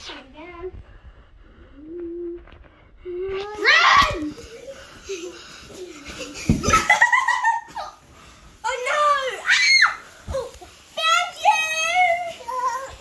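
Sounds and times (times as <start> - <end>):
children laughing and squealing: 3.5 - 8.1, 8.7 - 13.0.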